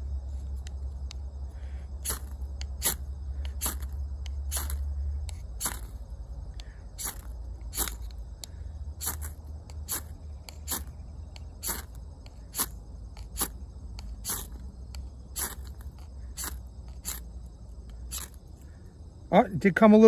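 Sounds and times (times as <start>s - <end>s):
knife scraping ferro rod: 18.1s - 18.4s.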